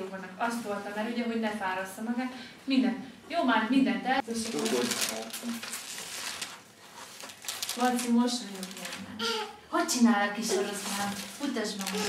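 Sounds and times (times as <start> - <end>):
magazine pages rustling and crinkling: 4.2 - 9.0, 10.6 - 12.0.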